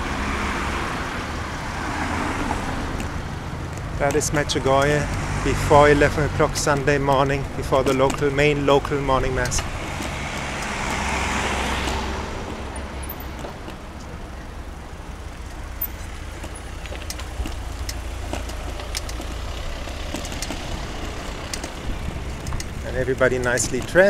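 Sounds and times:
car passing close by: 0.0 - 3.3, 9.7 - 13.5
low rumble of slow traffic: 0.0 - 24.0.

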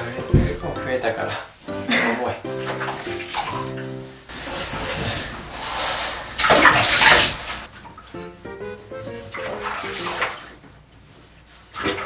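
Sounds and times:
background music: 0.0 - 4.3, 8.1 - 10.3
water splashing in a bathtub: 0.0 - 8.4, 9.0 - 12.0.

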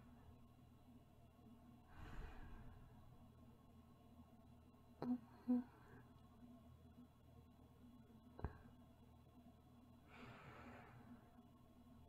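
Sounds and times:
faint low hum: 0.0 - 12.0
woman breathing softly: 1.9 - 3.1, 10.0 - 11.4.

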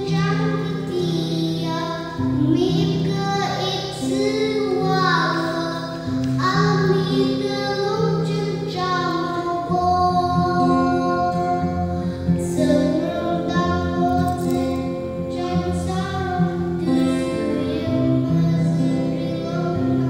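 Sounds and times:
boy singing into a microphone: 0.0 - 20.0
instrumental accompaniment: 0.0 - 20.0.

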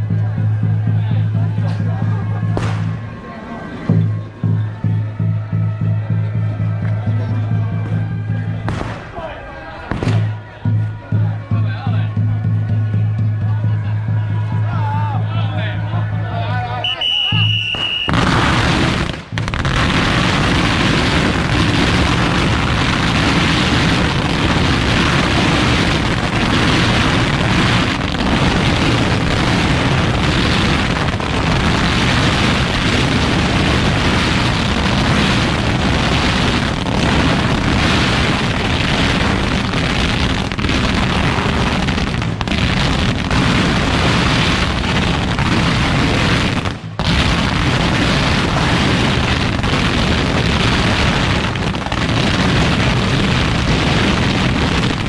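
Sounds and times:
firecrackers cracking and banging: 1.6 - 3.2, 8.7 - 10.4, 16.9 - 55.0.

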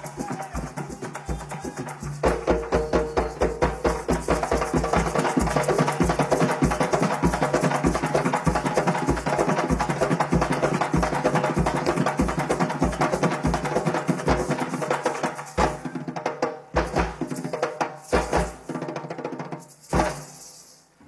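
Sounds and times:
maracas shaking: 0.0 - 16.1, 16.7 - 21.0
rapid hand drum strokes: 0.0 - 20.4.

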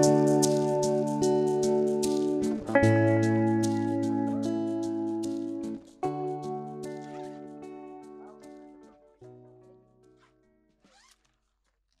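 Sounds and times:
tent zipper being pulled: 10.8 - 11.9.

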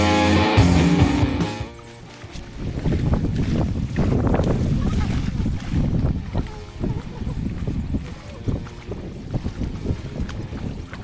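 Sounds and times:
rock music: 0.0 - 2.0
wind buffeting microphone: 2.3 - 11.0.

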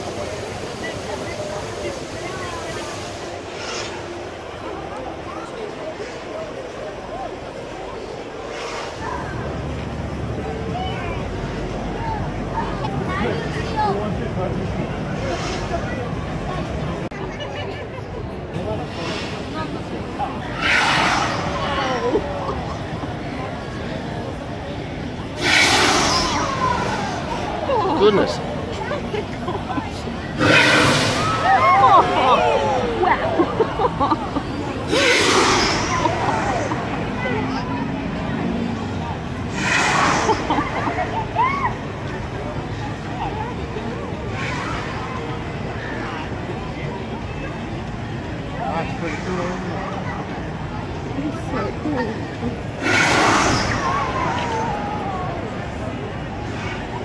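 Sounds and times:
crowd chatter: 0.0 - 57.0
gas fireball whoosh: 25.4 - 26.5, 30.4 - 31.7, 39.5 - 40.5, 52.8 - 54.2
fireball whoosh: 52.8 - 53.9.

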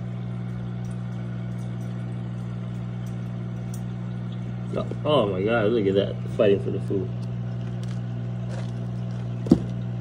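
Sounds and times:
water filter pump humming: 0.0 - 10.0.

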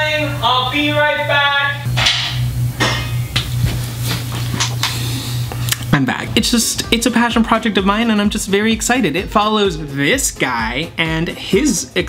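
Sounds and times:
low hum: 0.0 - 8.4.

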